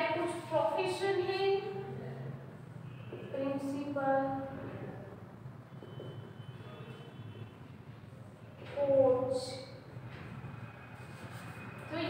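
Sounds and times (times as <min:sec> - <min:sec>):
marker writing on whiteboard: 0:10.1 - 0:12.0.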